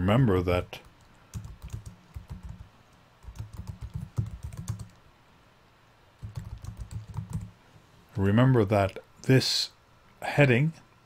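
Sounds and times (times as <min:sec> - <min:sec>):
computer keyboard typing: 0:00.8 - 0:05.0, 0:06.2 - 0:07.6.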